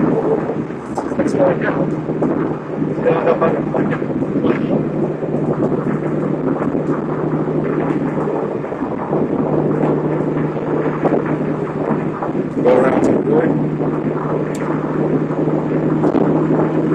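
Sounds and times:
low engine drone: 0.0 - 16.9
road and wind noise: 0.0 - 16.9.

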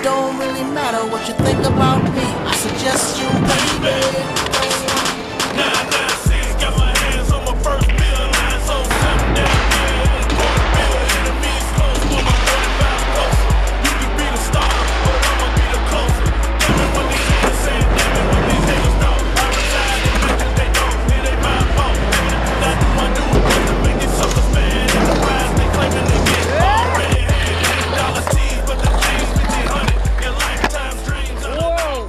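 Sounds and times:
hip-hop music with heavy bass: 0.0 - 32.0
skateboard clacking: 1.4 - 6.3, 7.8 - 15.8, 16.6 - 31.8
skateboard wheels rolling: 1.4 - 7.2, 7.9 - 31.9.

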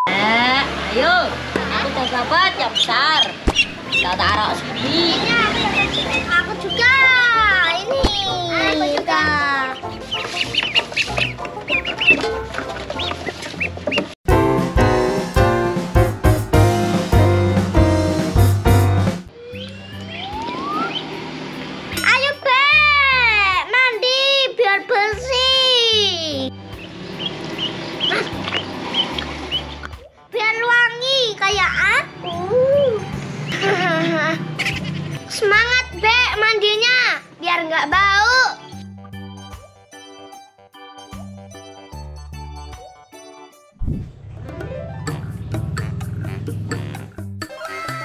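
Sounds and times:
background music: 0.4 - 48.0
ducklings peeping: 1.9 - 7.0, 9.7 - 14.2, 26.7 - 30.1, 33.5 - 35.3
child talking: 4.8 - 9.8, 22.0 - 26.5, 30.3 - 33.0, 35.3 - 38.8.

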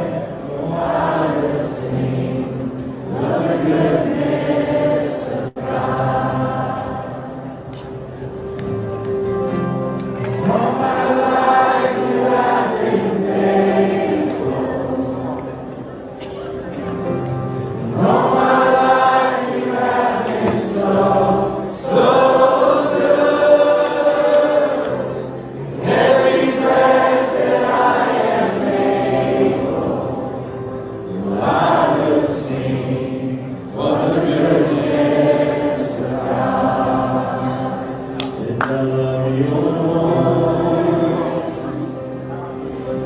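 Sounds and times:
congregation singing worship song: 0.0 - 8.3, 10.2 - 16.2, 16.8 - 43.0.

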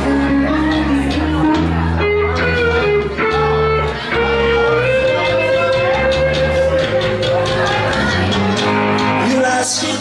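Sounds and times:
bass guitar line: 0.0 - 10.0
electric guitar lead notes: 0.0 - 10.0.

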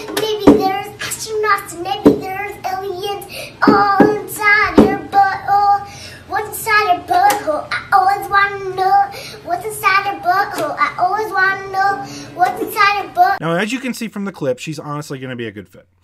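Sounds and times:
girl singing: 0.0 - 13.4.

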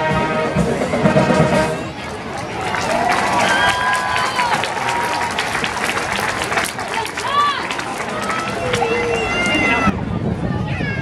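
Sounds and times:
crowd chatter and shouts: 0.0 - 11.0
scattered clapping: 2.0 - 9.8.

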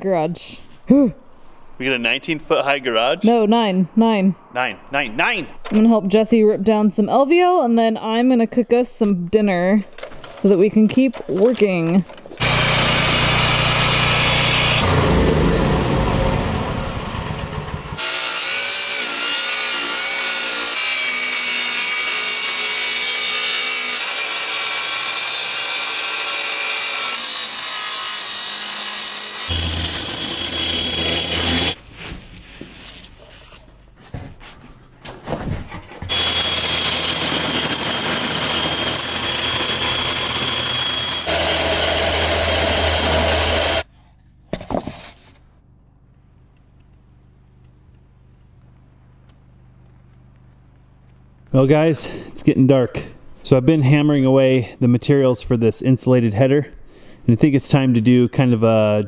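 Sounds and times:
circular saw cutting wood: 12.4 - 31.8, 36.1 - 43.9, 44.7 - 45.4
table saw cutting wood: 12.4 - 31.8, 36.1 - 43.9.

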